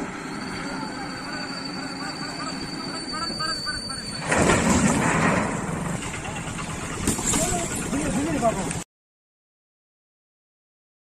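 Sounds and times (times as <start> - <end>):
motorcycle engine idling: 5.9 - 8.8.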